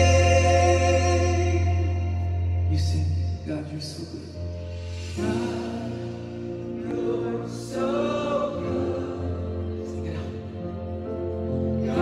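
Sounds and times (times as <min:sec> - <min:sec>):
steady low bass: 0:00.0 - 0:08.0
keyboard and guitars sustaining chords: 0:00.0 - 0:12.0.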